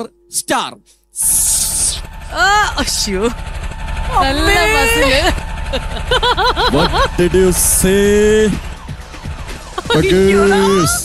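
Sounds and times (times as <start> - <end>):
low engine-like rumble: 1.5 - 10.7.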